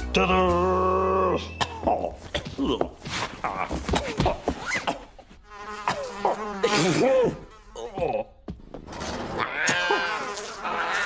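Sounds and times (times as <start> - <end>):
cartoon housefly buzzing: 5.4 - 7.9, 9.7 - 11.0.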